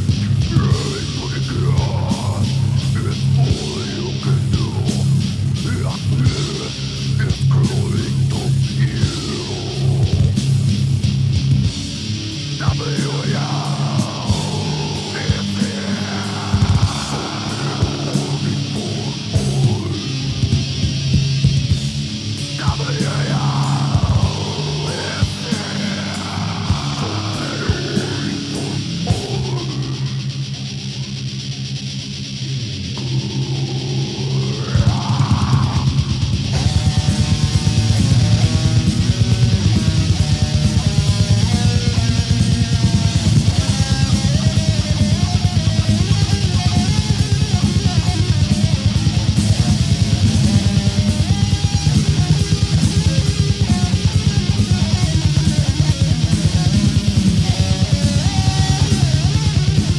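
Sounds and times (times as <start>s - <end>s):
death metal band playing: 0.0s - 59.9s
distorted electric guitar: 0.0s - 59.9s
rapid drumming: 0.0s - 59.9s.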